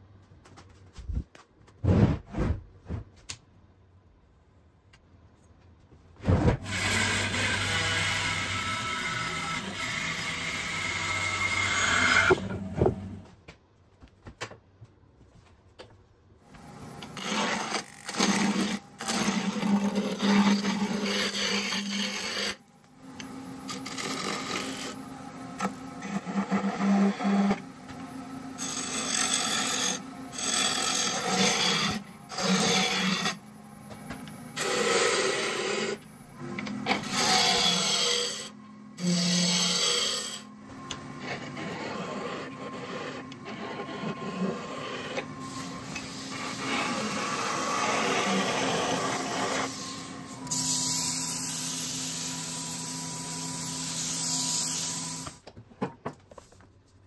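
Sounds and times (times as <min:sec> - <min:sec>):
gouge cutting spinning wood: 0:06.6 - 0:13.2, 0:16.6 - 0:55.4
wood lathe humming: 0:06.7 - 0:13.1, 0:16.6 - 0:55.3.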